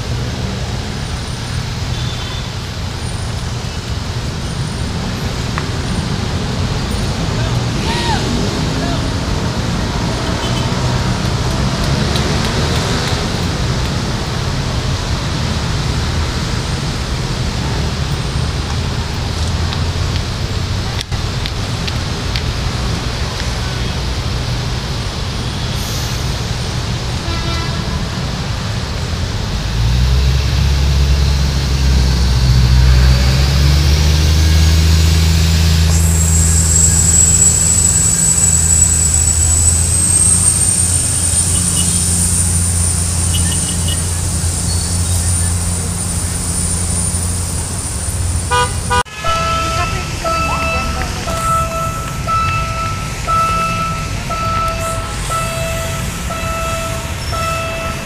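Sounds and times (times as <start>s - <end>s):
diesel train engine running: 0.0s - 58.0s
high whine: 30.2s - 58.0s
train horn short toots: 48.5s - 58.0s.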